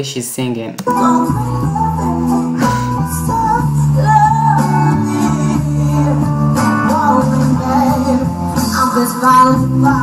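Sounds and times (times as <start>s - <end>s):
band playing: 0.0s - 10.0s
woman singing soul ballad: 0.8s - 10.0s
sustained bass notes: 0.9s - 10.0s.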